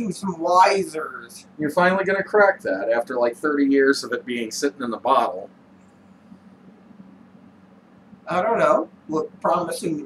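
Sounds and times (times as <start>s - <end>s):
steady hiss: 0.0s - 6.5s
faint low hum: 0.0s - 10.0s.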